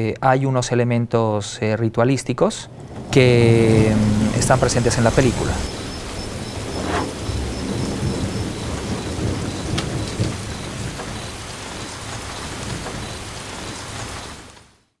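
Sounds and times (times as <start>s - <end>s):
rain rushing: 2.0s - 15.0s
low rumble: 2.2s - 11.1s.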